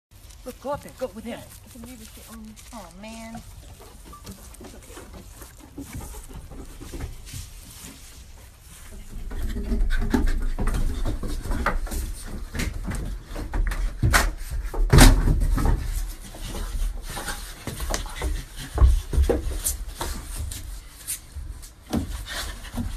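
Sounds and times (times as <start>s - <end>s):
chimpanzees clambering on wooden stairs: 0.2s - 22.9s.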